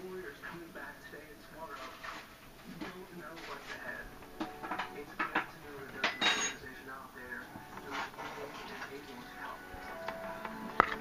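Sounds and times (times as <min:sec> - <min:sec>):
kitchenware clinking: 0:02.0 - 0:06.8.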